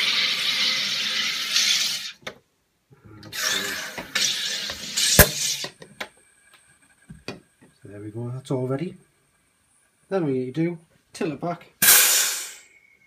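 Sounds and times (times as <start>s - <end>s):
gas hissing into bottle: 0.0s - 2.2s, 3.3s - 5.9s, 11.8s - 13.0s
sharp loud snap: 5.0s - 5.8s, 11.8s - 12.7s.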